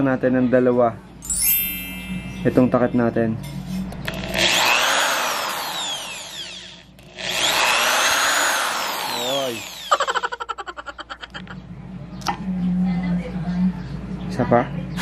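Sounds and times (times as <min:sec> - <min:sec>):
electric drill whining: 0:04.0 - 0:10.2.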